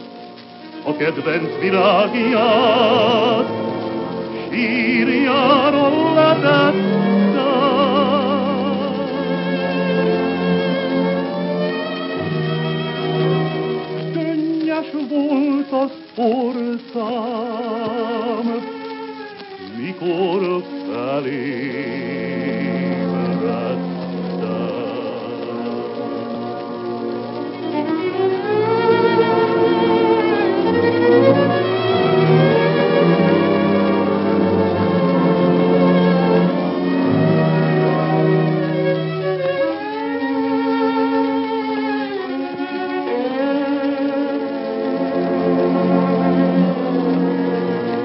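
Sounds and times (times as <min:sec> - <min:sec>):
bowed strings playing slow song: 0:00.0 - 0:48.0.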